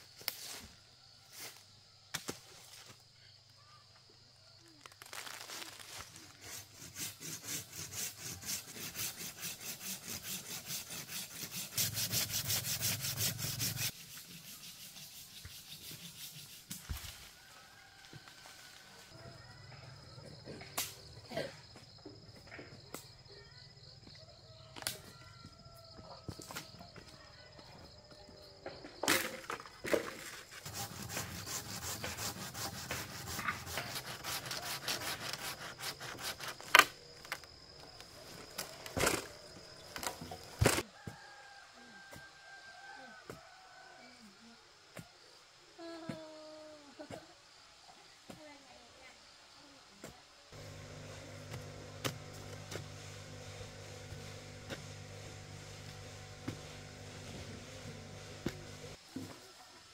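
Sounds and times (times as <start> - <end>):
hand saw cutting wood: 6.4 - 16.8, 29.9 - 37.0, 50.6 - 59.0.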